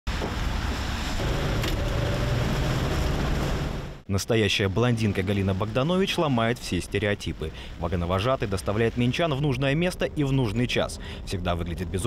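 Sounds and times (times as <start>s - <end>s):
street traffic: 0.1s - 12.0s.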